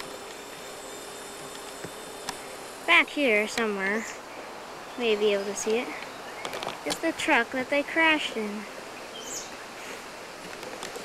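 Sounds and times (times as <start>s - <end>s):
low steady hum: 0.0s - 11.0s
steady hiss: 0.0s - 11.0s.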